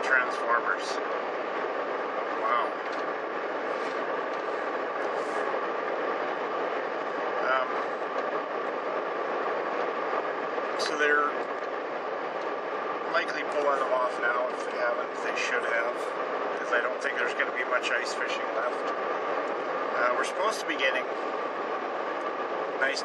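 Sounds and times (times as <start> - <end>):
car road and engine noise: 0.0 - 23.0
faint steady hum: 0.0 - 23.0.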